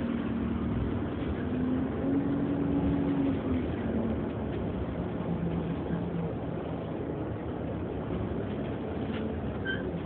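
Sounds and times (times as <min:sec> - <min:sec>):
bus engine drone: 0:00.0 - 0:10.0.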